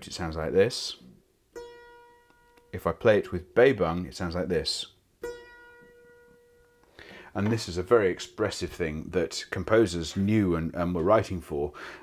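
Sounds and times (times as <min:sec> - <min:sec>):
clavichord note with vibrato: 0:05.2 - 0:06.9.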